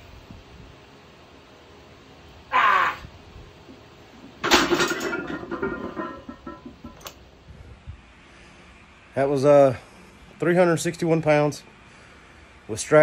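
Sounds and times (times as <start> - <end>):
barbell plates clanging down: 4.4 - 7.1.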